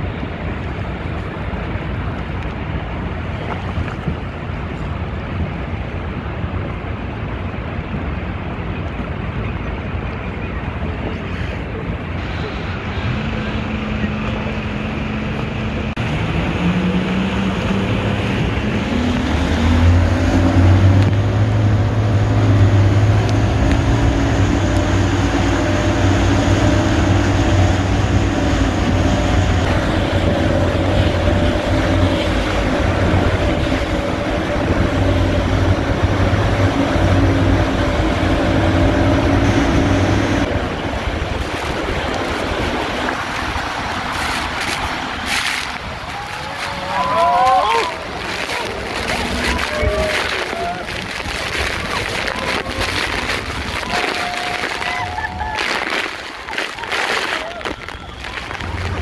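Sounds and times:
motorboat engine: 0.0s - 57.0s, 57.7s - 59.0s
rushing water: 0.0s - 59.0s
wind noise: 0.0s - 59.0s.

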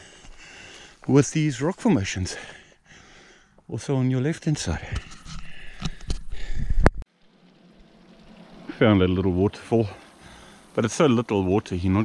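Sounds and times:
man speaking: 1.0s - 2.5s, 3.7s - 5.0s, 8.7s - 10.0s, 10.8s - 12.0s.

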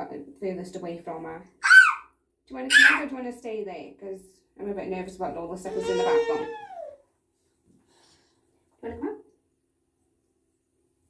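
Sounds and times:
woman speaking: 0.0s - 1.5s, 2.5s - 6.6s, 8.8s - 9.2s.

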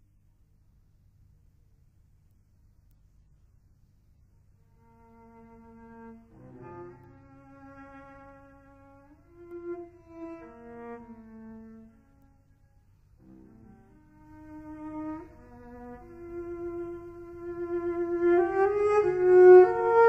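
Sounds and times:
cello bowing sustained notes: 4.7s - 20.0s.

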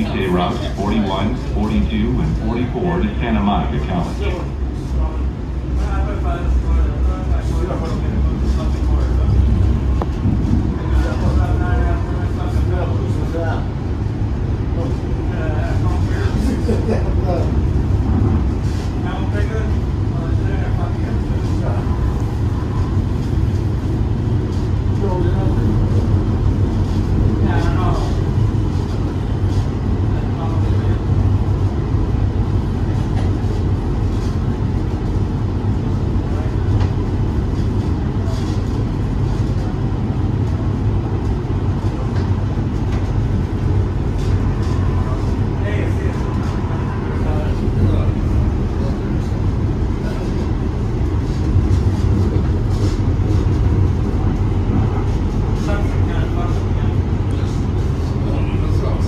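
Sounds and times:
faint voices: 0.0s - 59.0s
train rumbling on rails: 0.0s - 59.0s.

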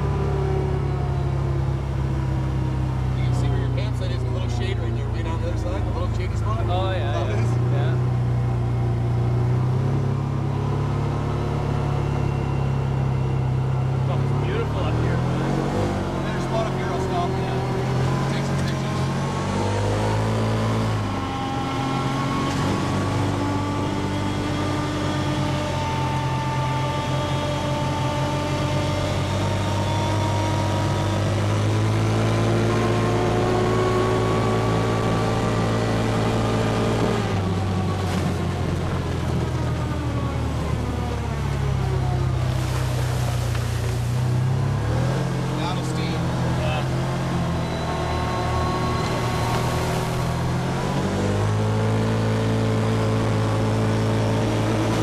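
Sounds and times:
utility vehicle engine running: 0.0s - 55.0s.

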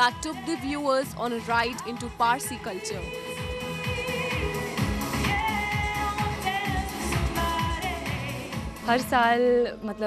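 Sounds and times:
woman singing with vibrato: 0.0s - 8.7s
pop song with steady beat: 0.0s - 10.0s.

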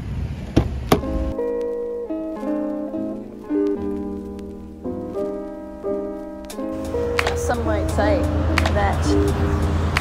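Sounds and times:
wind rumble: 0.0s - 10.0s
plucked acoustic guitar melody: 1.0s - 10.0s.

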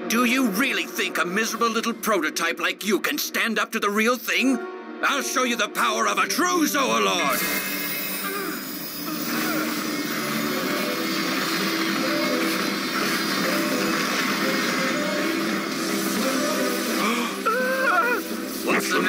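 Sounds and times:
dramatic soundtrack music: 0.0s - 19.0s.

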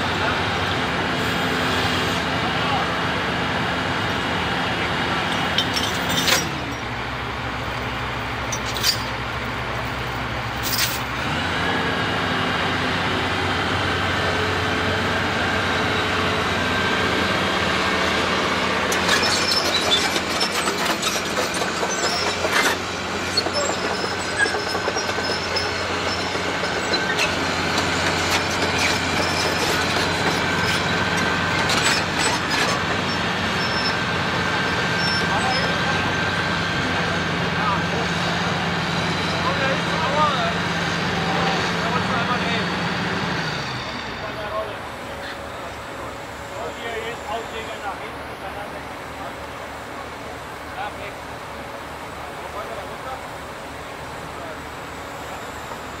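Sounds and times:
heavy diesel machinery drone: 0.0s - 56.0s.

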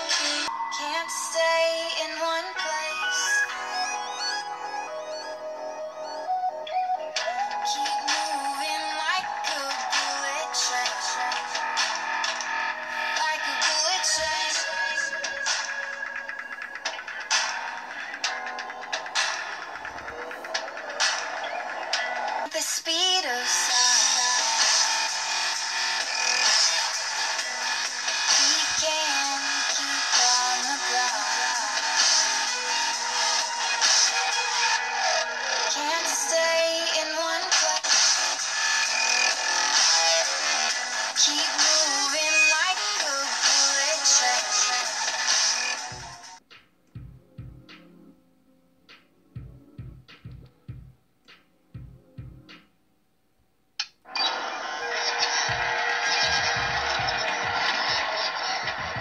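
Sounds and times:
electronic dance music from speakers: 0.0s - 46.4s, 54.2s - 59.0s.

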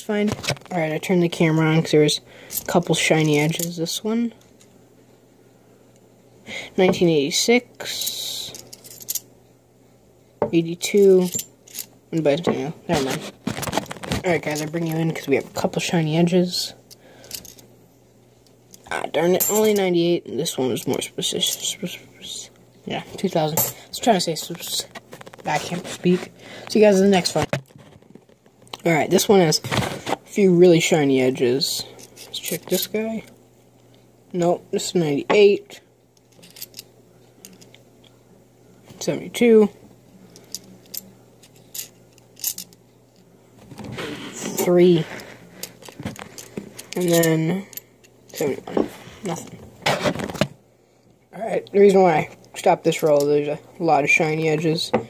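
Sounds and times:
person speaking: 0.0s - 4.4s, 6.5s - 8.7s, 10.4s - 11.5s, 12.1s - 16.9s, 18.8s - 27.6s, 28.7s - 33.4s, 34.3s - 35.9s, 38.9s - 40.8s, 43.8s - 49.7s, 51.3s - 55.0s
low steady hum: 0.0s - 55.0s
coins clinking: 19.4s - 19.8s, 23.5s - 23.8s, 40.4s - 42.8s.

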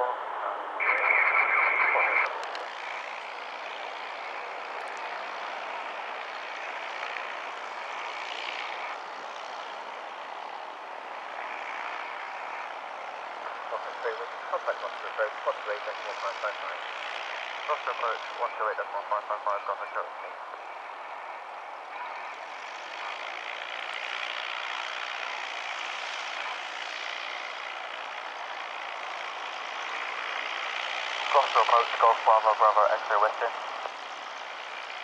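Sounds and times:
air-band radio voices: 0.0s - 5.8s, 13.3s - 23.3s, 29.1s - 35.0s
propeller aircraft engine running: 0.0s - 35.0s.

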